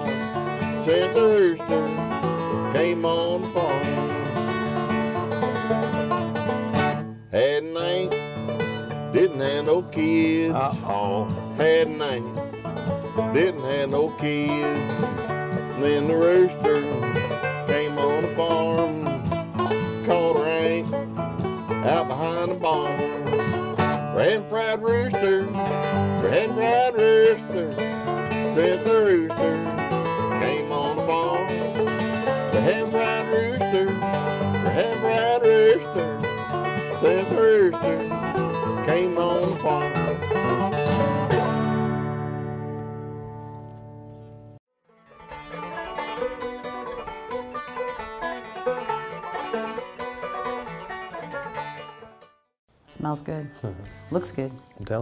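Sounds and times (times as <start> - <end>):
bluegrass banjo and guitar: 0.0 - 52.3.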